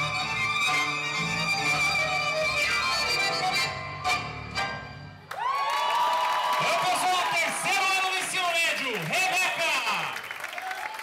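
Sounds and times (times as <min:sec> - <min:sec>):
tango music with violin: 0:00.0 - 0:05.2
audience cheering and shouting: 0:05.3 - 0:11.0.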